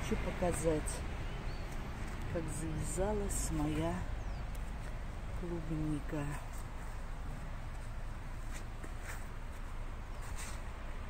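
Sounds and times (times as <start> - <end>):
faint rustles: 6.3 - 10.9.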